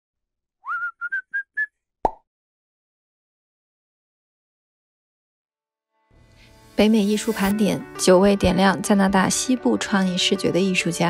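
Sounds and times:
person whistling: 0.6 - 1.8.

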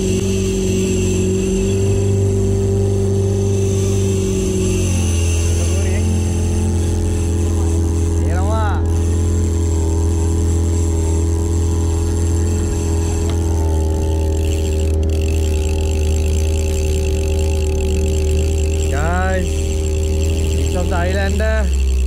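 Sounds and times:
outboard motor running: 0.0 - 22.0.

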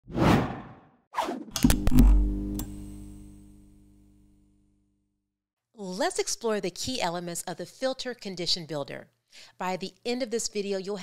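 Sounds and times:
quick whooshes: 0.1 - 1.5.

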